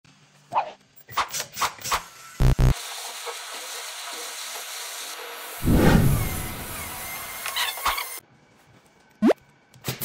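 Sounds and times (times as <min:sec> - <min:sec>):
loud deep thuds: 0:05.6 - 0:07.0
gas torch flame hissing: 0:05.6 - 0:07.1.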